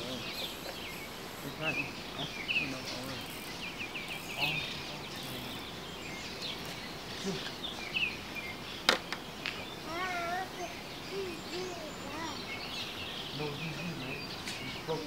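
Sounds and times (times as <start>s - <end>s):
birds chirping: 0.0s - 15.0s
outdoor background noise: 0.0s - 15.0s.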